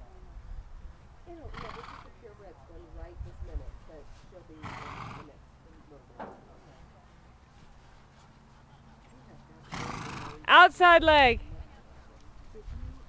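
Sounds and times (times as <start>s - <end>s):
horse snorting: 1.4s - 2.2s, 4.6s - 5.3s, 9.6s - 10.4s.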